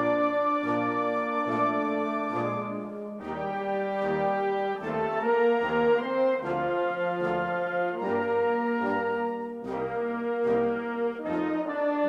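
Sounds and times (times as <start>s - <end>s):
brass sustained chords: 0.0s - 12.0s.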